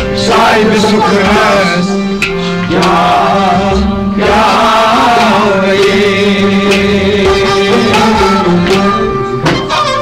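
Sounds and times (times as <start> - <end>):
man singing: 0.0 - 9.6
instrumental drone: 0.0 - 10.0.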